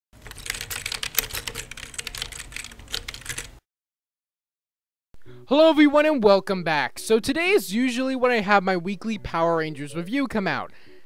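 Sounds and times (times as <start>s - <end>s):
rapid keyboard typing: 0.2s - 3.6s.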